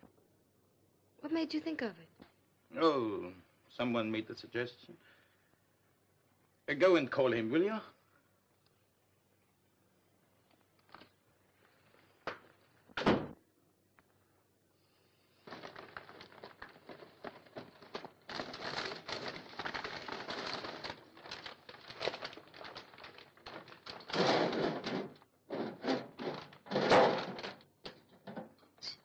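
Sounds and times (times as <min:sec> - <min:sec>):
wrapping paper crackling: 0:10.5 - 0:12.6, 0:15.2 - 0:28.0.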